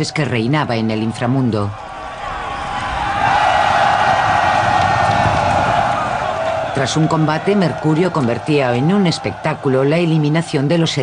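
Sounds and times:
large crowd cheering: 0:00.0 - 0:11.0.

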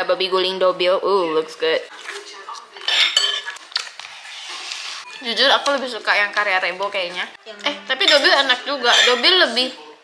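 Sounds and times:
metal spoon clinking on dish: 0:02.8 - 0:03.5, 0:08.0 - 0:09.3.

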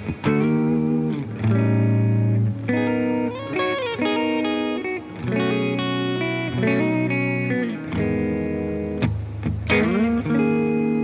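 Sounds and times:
electric guitar chords: 0:00.0 - 0:11.0.

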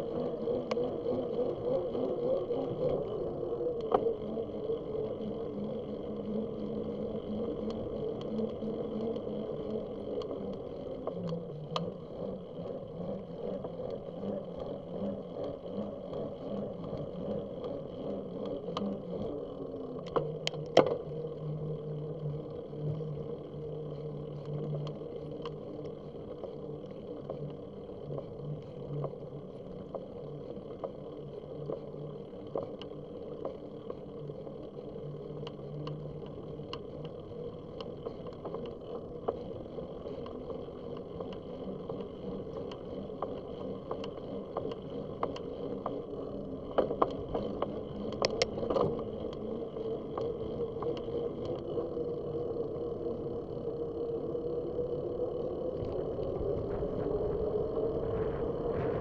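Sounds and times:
bicycle tyre hum: 0:00.0 - 0:59.0
small clicks and rattles: 0:00.0 - 0:59.0
wind noise: 0:55.8 - 0:59.0.

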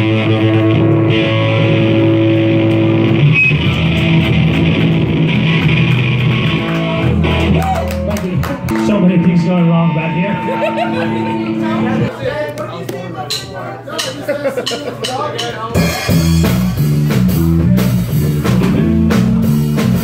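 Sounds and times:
electric guitars ringing chords: 0:00.0 - 0:12.1.

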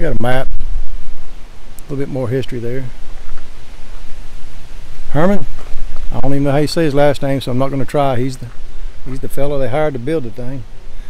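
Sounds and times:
wind blowing across microphone: 0:00.0 - 0:11.0.

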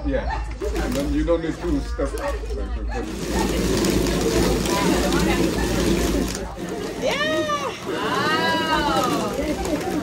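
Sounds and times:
wooden machine clattering: 0:03.0 - 0:10.0.

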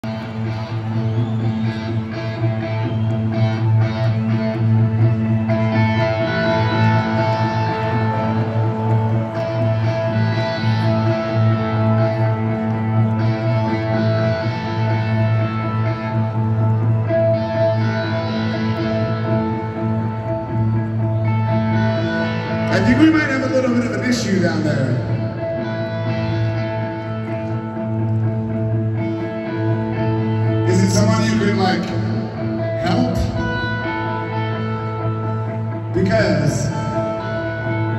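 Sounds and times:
electric guitars ringing: 0:00.0 - 0:37.9
live rock band: 0:00.0 - 0:37.9
voice over band: 0:22.6 - 0:25.7, 0:30.5 - 0:34.2, 0:35.9 - 0:37.9.

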